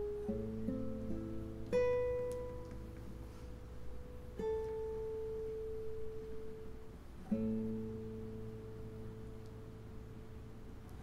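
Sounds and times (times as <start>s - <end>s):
classical guitar note ringing: 0.0s - 10.8s.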